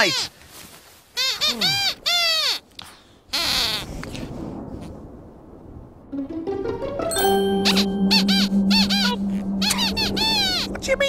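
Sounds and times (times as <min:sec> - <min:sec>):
puppet high-pitched squeaks: 0:00.0 - 0:00.3, 0:01.2 - 0:02.8, 0:03.4 - 0:03.9, 0:07.6 - 0:10.7.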